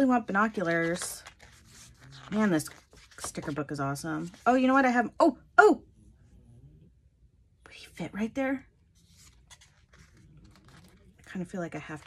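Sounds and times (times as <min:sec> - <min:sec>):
paper rustling: 0:00.3 - 0:04.5, 0:09.0 - 0:12.0.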